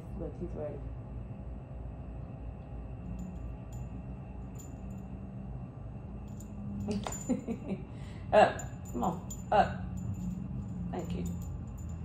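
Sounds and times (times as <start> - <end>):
low room hum: 0.0 - 12.0
dog collar tags jingling: 6.3 - 7.6, 8.6 - 12.0.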